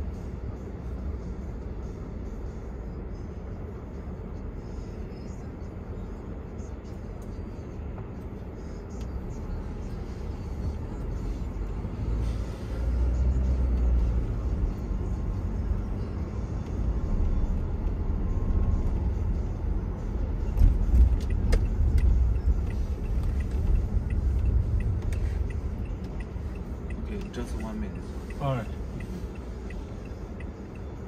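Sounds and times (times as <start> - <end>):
car driving on city street: 0.0 - 31.0.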